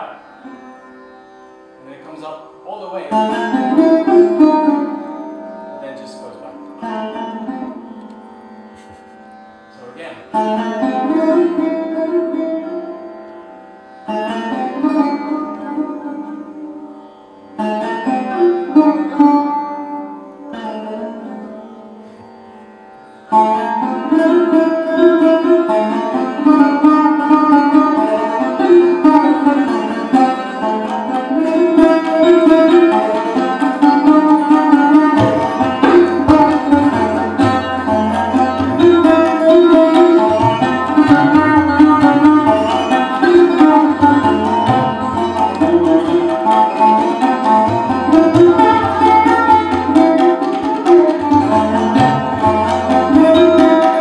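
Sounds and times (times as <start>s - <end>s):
sarod plucked notes: 0.0s - 54.0s.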